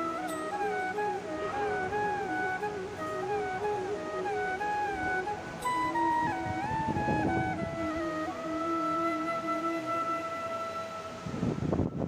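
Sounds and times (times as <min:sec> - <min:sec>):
flute holding a long note: 0:00.0 - 0:12.0.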